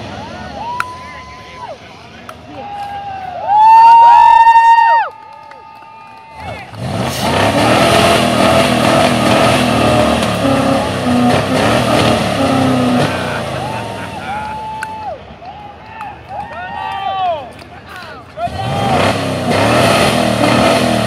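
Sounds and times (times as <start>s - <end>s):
car engine revving: 6.4s - 14.7s, 18.4s - 21.0s.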